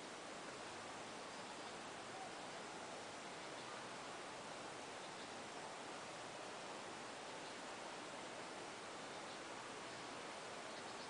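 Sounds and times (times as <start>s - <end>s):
outdoor ambience hiss: 0.0s - 11.0s.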